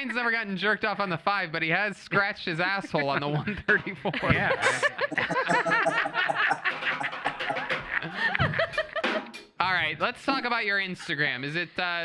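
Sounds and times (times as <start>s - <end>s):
people laughing together: 2.2s - 9.3s.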